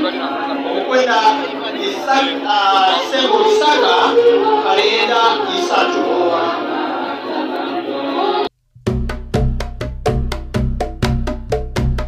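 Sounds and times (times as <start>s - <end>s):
crowd voices: 0.0s - 8.5s
electronic music jingle: 8.8s - 12.0s.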